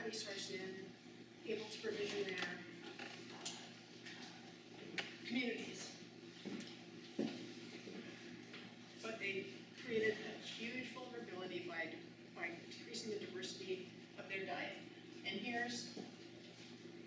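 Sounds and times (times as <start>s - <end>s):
woman speaking: 0.0s - 2.8s, 5.2s - 6.0s, 9.0s - 16.0s.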